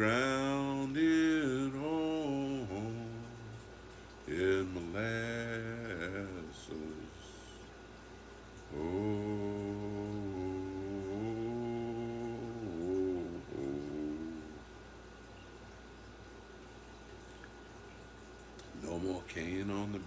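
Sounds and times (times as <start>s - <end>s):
man humming: 0.0s - 3.6s, 4.3s - 7.7s, 8.7s - 14.7s.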